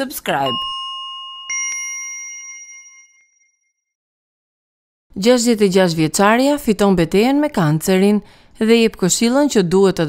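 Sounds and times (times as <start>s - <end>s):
bell chime ding: 0.4s - 3.8s.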